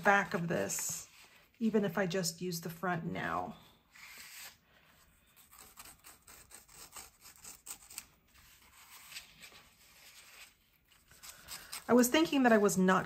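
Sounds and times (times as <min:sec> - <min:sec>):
knife scratching thin paper: 0:05.4 - 0:12.1.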